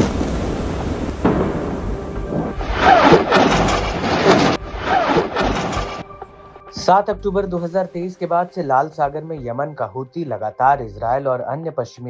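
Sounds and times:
deep rumbling explosion boom: 0.0s - 4.7s.

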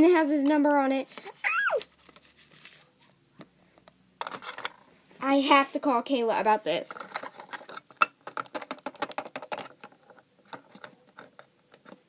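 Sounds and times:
plastic toy clicks and taps: 8.0s - 12.0s.

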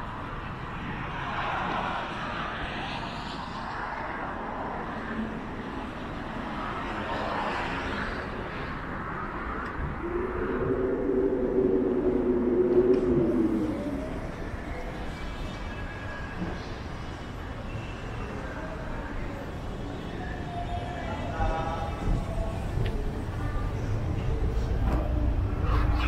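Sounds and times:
cars passing: 0.0s - 15.8s
steady multi-tone hum: 3.3s - 26.0s.

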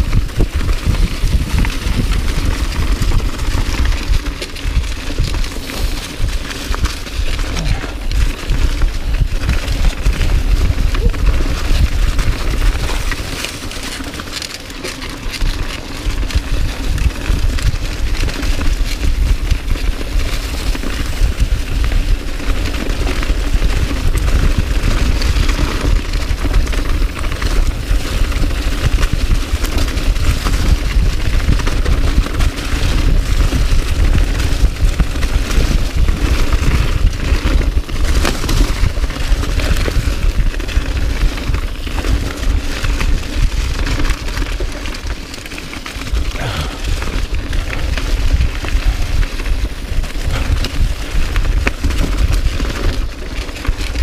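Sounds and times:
wind buffeting microphone: 0.0s - 13.7s, 15.4s - 45.4s, 46.0s - 54.0s
bike frame rattling: 0.0s - 54.0s
tyres crunching through dry leaves: 0.3s - 18.5s, 31.1s - 54.0s.

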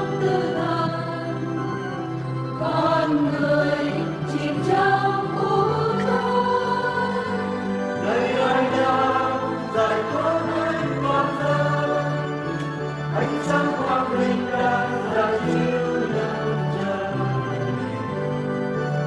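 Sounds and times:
choir singing held notes: 0.0s - 18.1s.

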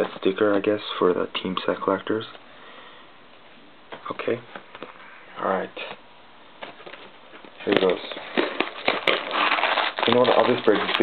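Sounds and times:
foil packs crinkling: 6.6s - 11.0s.

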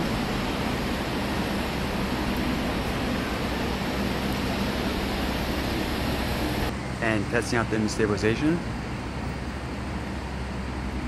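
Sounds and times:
city street noise: 0.0s - 11.0s
low constant hum: 0.0s - 11.0s.

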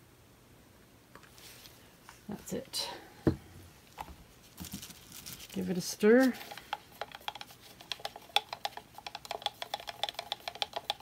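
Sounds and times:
paint cups knocking: 6.4s - 11.0s.

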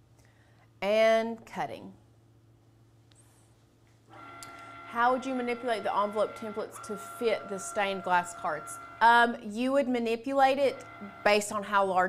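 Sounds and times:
cutting machine motors whining: 4.1s - 12.0s.

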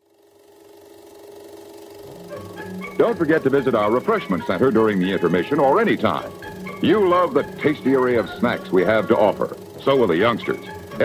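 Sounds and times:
rapid mechanical rattle: 0.0s - 11.0s.

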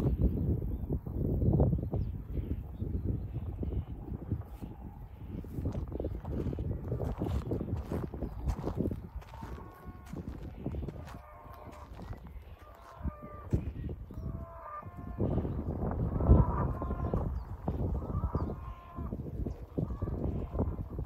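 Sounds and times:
distant animal calls: 2.3s - 21.0s.

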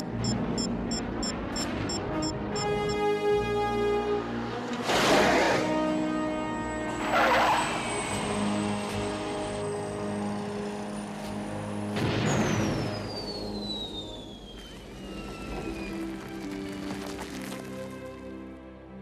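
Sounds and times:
orchestral film score: 0.1s - 19.0s.

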